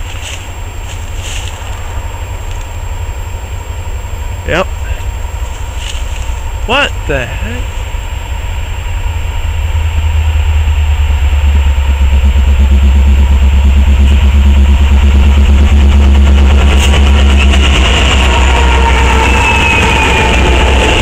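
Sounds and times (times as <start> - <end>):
freight locomotive engine rumble: 0.0 - 21.0.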